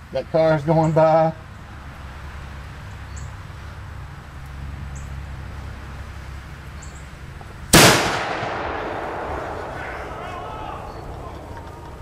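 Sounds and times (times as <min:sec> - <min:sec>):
cannon blast: 0:07.8 - 0:11.0.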